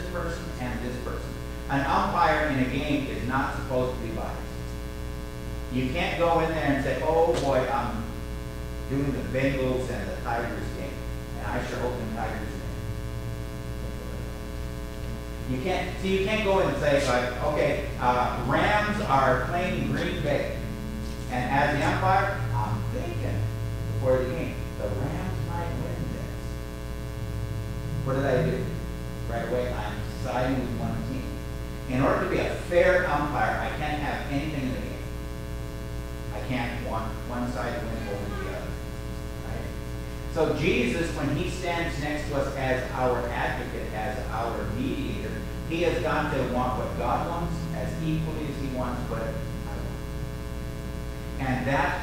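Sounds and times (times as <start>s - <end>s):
electrical mains hum: 0.0s - 52.0s
faint man's voice: 8.9s - 12.8s, 15.5s - 26.5s, 27.9s - 35.0s, 36.3s - 38.8s, 40.4s - 50.0s.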